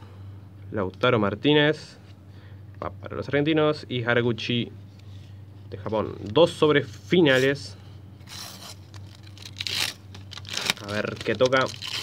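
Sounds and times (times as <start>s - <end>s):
foil packet tearing: 8.3s - 12.0s.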